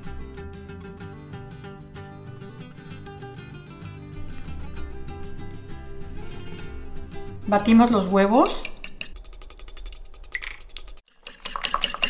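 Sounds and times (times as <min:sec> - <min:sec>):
fork beating eggs in a bowl: 0:08.4 - 0:12.0.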